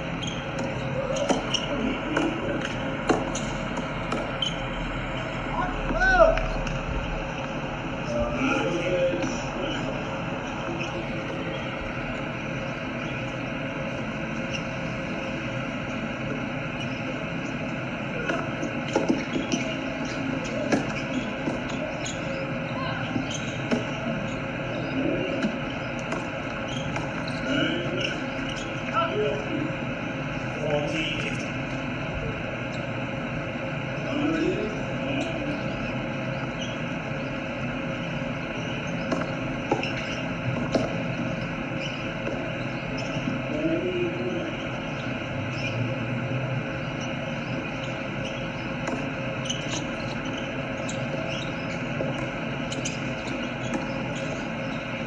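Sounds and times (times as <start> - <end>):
distant voices: 0.0 - 55.0
steady background hum: 0.0 - 55.0.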